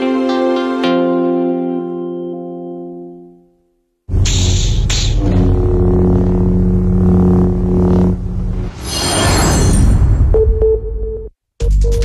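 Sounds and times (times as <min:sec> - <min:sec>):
deep synth drone: 0:04.1 - 0:08.7
low rumble: 0:05.2 - 0:08.8.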